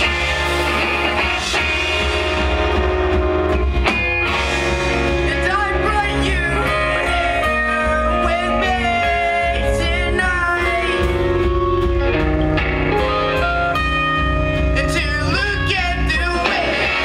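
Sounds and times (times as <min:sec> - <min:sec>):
electric guitars sustained notes: 0:00.0 - 0:17.0
live rock band playing: 0:00.0 - 0:17.0.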